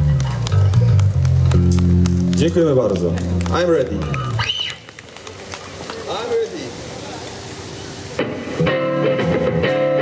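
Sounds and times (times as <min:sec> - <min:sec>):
stage background noise: 0:00.0 - 0:10.0.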